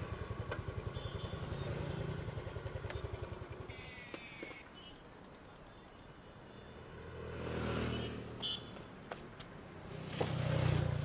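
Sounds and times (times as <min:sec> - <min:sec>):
vehicle driving past: 0:06.9 - 0:08.3.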